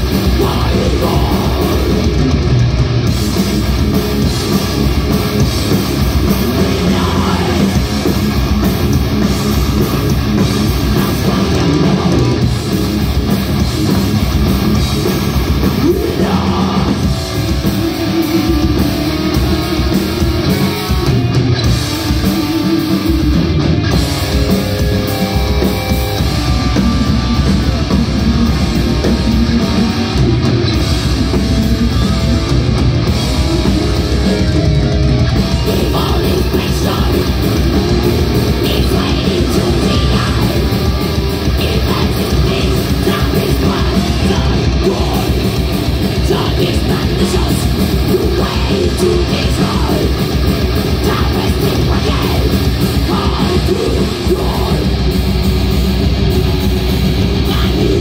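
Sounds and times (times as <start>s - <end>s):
bass guitar: 0.0s - 58.0s
distorted electric guitars: 0.0s - 58.0s
fast drum kit: 0.0s - 58.0s
person singing: 0.1s - 2.2s, 6.5s - 8.0s, 10.8s - 12.5s, 15.8s - 17.1s, 35.4s - 55.0s, 57.4s - 58.0s.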